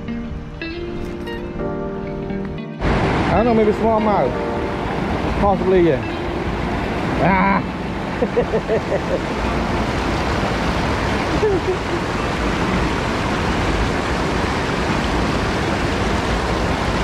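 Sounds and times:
river water pouring over weir: 2.8s - 17.0s
man laughing: 7.2s - 9.4s, 11.2s - 12.1s.

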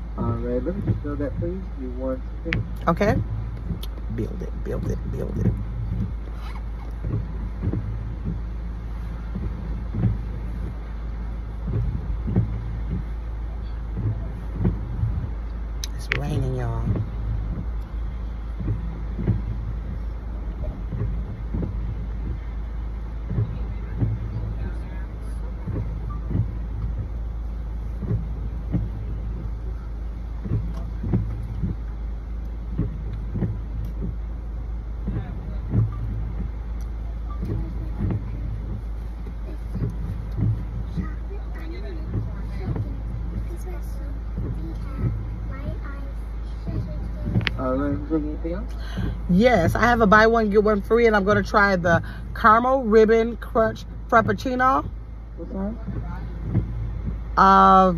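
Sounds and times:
car engine idling: 0.0s - 57.9s
faint low sounds: 0.0s - 57.9s.

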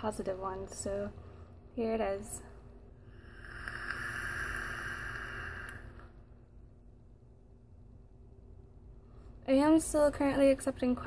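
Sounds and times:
airy hiss of vape draw: 3.2s - 6.0s.

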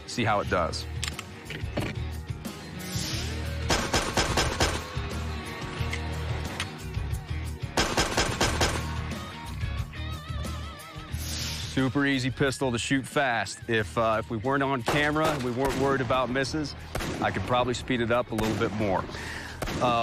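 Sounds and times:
background music: 0.0s - 20.0s
pistol shots: 3.6s - 5.1s, 7.7s - 9.2s, 14.9s - 17.6s, 18.3s - 20.0s.

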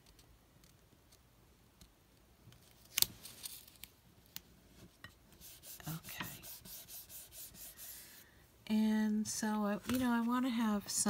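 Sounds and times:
fingers rubbing paper sticker: 5.4s - 8.0s.

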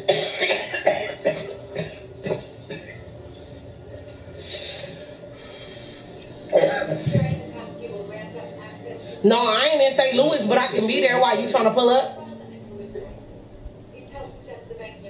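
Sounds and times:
woman coughing: 0.0s - 3.0s, 6.5s - 7.4s
quiet breathing: 4.3s - 9.3s.

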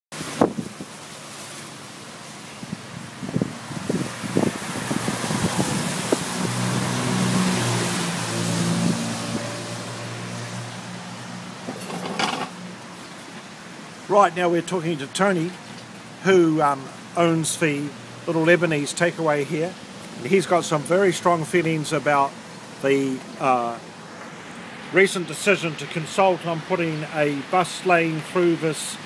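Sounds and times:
tyres hissing on wet road: 0.2s - 29.0s
passing vehicle engine hum: 2.8s - 12.8s.

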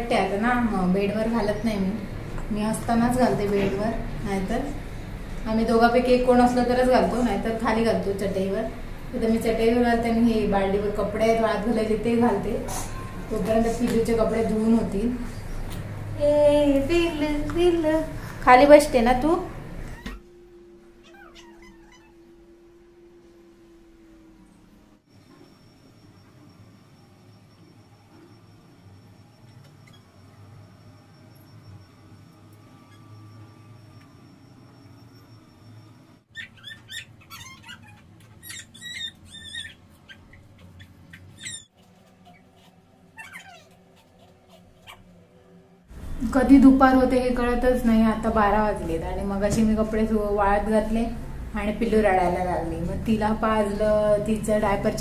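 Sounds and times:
steady low hum: 0.0s - 55.0s
high-pitched chirping and squeaking: 19.9s - 20.3s, 21.0s - 22.4s, 29.8s - 30.2s, 32.8s - 33.4s, 36.3s - 45.1s
infant cooing: 21.0s - 22.2s.

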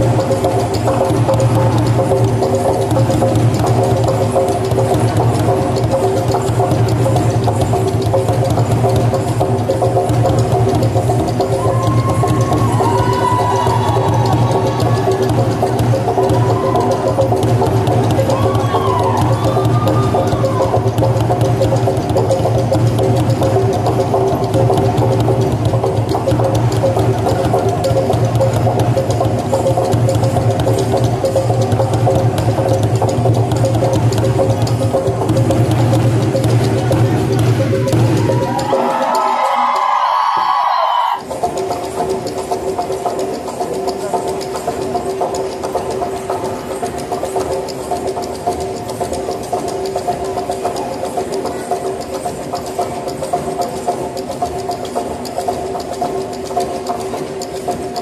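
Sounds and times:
steady ringing tones: 0.0s - 40.0s, 41.2s - 58.0s
quick steady drum beat: 0.0s - 40.6s.

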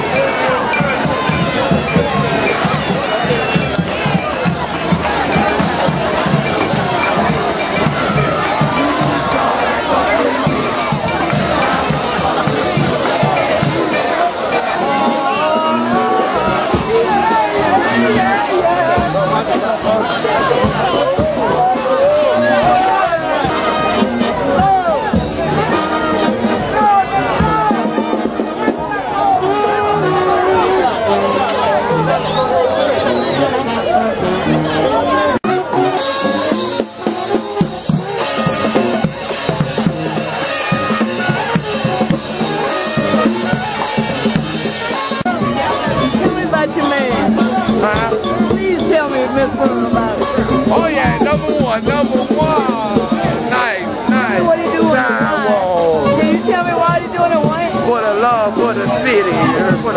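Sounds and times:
brass band playing: 0.0s - 59.9s
people shouting and cheering: 0.0s - 59.9s.

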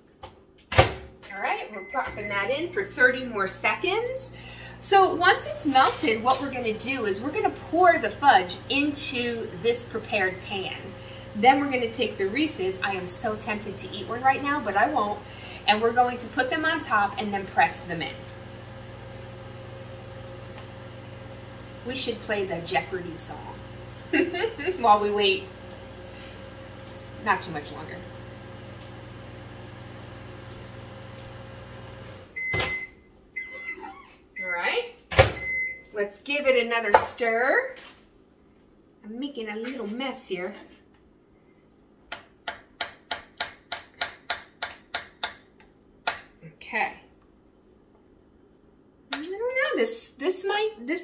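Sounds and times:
microwave oven humming: 1.3s - 35.9s.

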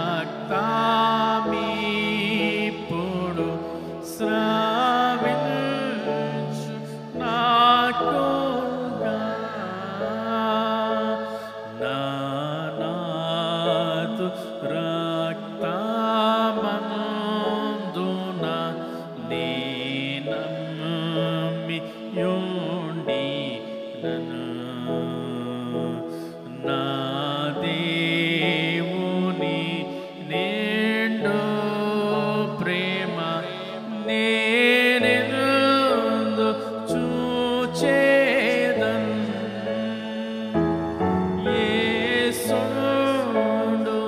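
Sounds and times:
man singing a devotional song: 0.0s - 44.0s.

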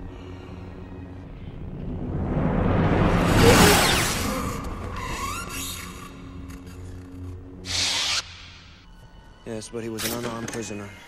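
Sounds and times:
dark orchestral music: 0.0s - 11.0s
lightsaber swoosh: 1.7s - 5.3s.

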